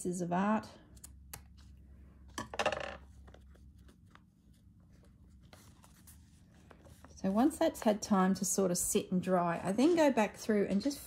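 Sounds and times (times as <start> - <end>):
paper rustling: 3.1 - 7.9.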